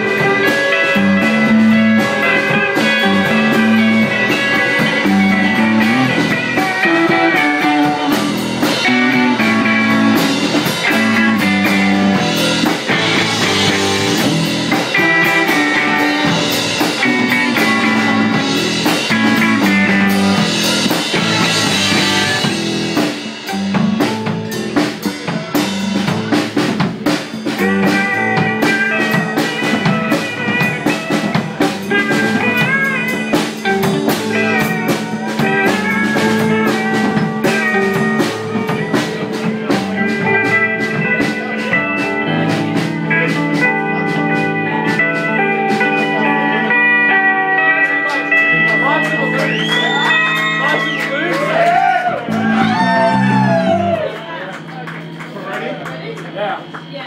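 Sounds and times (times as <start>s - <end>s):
dense drumming on drum kit: 0.0s - 43.5s
electric guitar: 0.0s - 57.0s.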